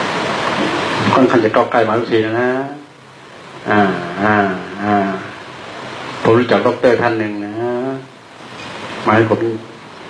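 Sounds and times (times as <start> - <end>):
man drawing out syllables: 3.6 - 5.5.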